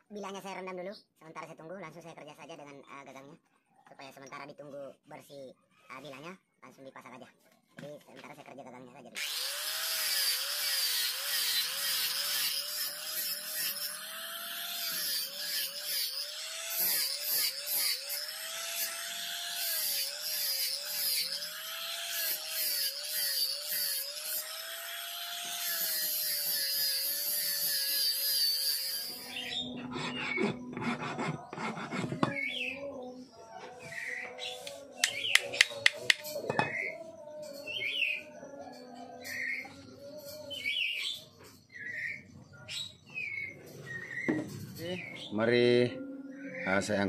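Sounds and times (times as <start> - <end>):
angle grinder sanding: 9.2 - 32.6.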